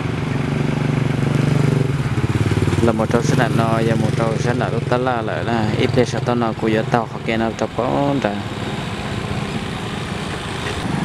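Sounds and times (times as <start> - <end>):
small motorcycle engine running: 0.0 - 11.0.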